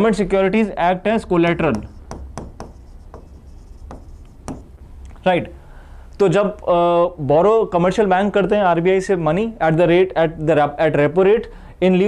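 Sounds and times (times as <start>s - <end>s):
marker writing on whiteboard: 1.2s - 4.8s.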